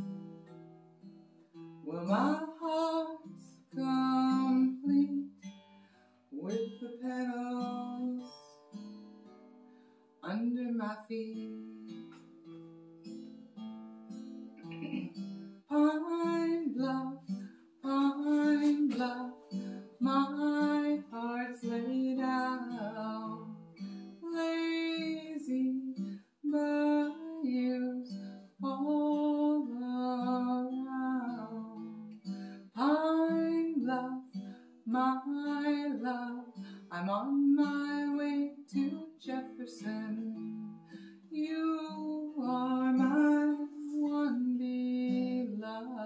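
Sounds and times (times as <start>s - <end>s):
acoustic guitar: 0.0s - 46.0s
woman singing: 1.8s - 5.4s, 6.4s - 8.7s, 10.2s - 12.0s, 15.7s - 23.6s, 24.2s - 46.0s.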